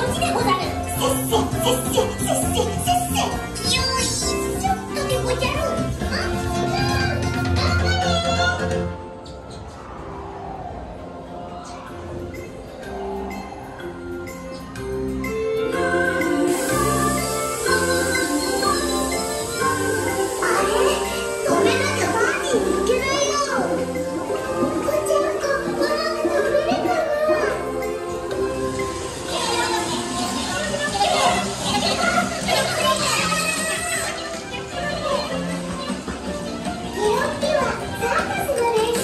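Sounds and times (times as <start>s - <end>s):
cheerful soundtrack music over speakers: 0.0s - 9.8s, 11.8s - 39.0s
high-pitched children's voices: 0.0s - 9.8s, 11.2s - 39.0s.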